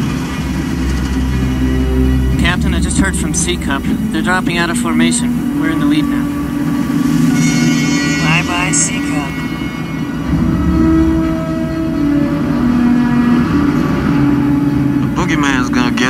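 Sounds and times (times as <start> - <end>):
bomber engines droning: 0.0 - 16.0
orchestral music notes: 0.0 - 16.0.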